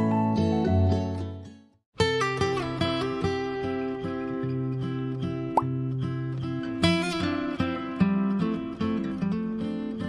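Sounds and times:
guitar music with beat: 0.0 - 10.0.

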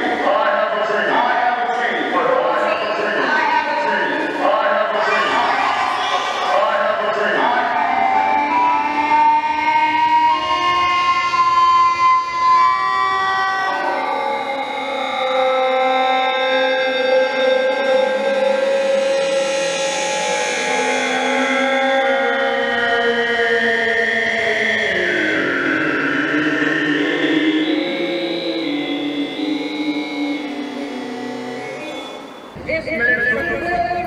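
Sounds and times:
electronic drone music: 0.0 - 33.8.

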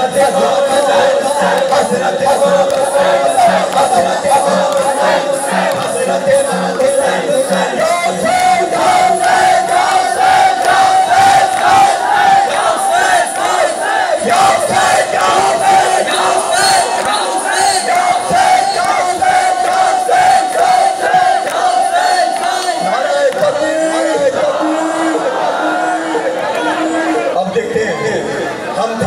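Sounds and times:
crowd chanting in unison: 0.0 - 28.8.

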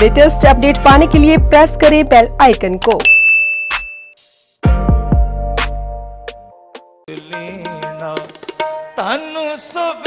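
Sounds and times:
notification ding: 3.0 - 4.2.

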